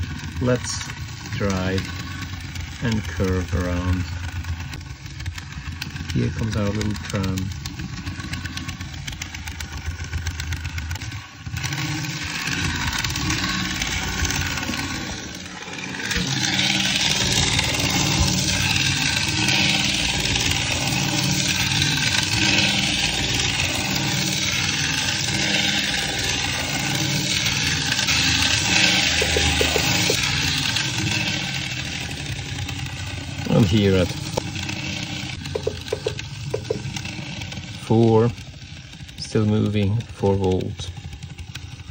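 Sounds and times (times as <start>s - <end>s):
model train wheels on rails: 0.0s - 41.9s
small electric motor whirring: 0.0s - 41.9s.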